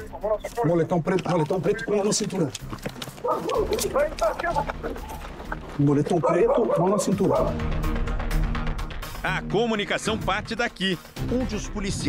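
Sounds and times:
dog barking: 3.2 - 4.6, 6.1 - 7.6.

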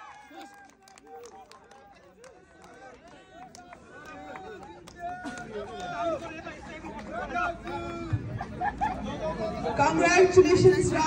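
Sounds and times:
crowd cheering: 0.0 - 8.8
people talking over each other: 0.0 - 11.0
hand claps: 0.1 - 6.2
crowd murmuring: 0.3 - 11.0.

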